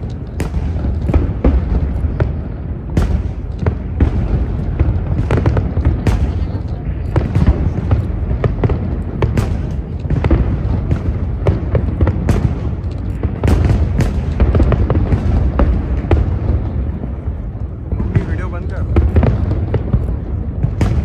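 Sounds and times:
fireworks bangs and crackles: 0:00.0 - 0:21.0.

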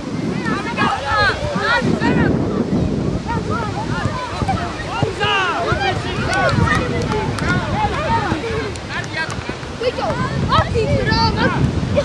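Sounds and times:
wind buffeting microphone: 0:00.0 - 0:12.0
people shouting: 0:00.2 - 0:12.0.

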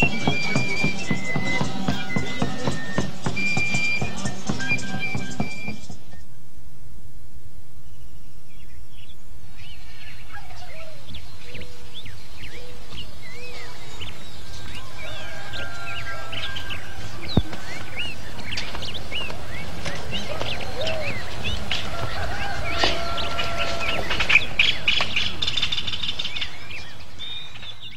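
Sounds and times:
small birds chirping: 0:00.0 - 0:06.4, 0:07.8 - 0:27.9.

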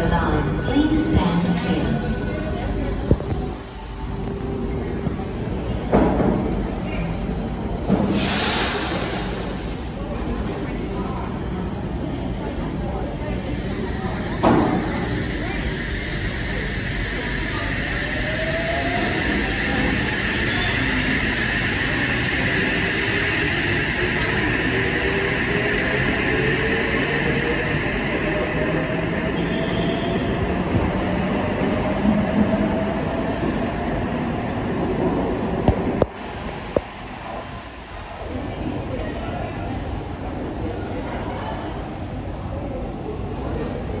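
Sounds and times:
train running on rails: 0:00.0 - 0:44.0.

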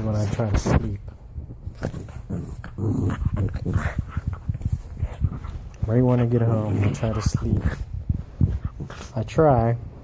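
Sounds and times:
puppy making rough vocal noises: 0:02.1 - 0:08.0.

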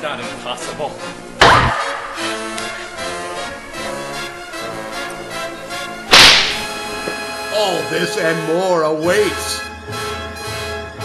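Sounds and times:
background music: 0:00.0 - 0:11.0
loud sharp crack: 0:01.4 - 0:02.9, 0:06.1 - 0:06.9.

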